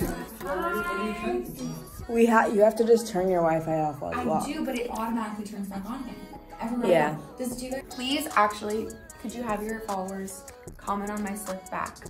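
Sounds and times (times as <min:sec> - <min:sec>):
woman singing gliding phrase: 0:00.0 - 0:02.6.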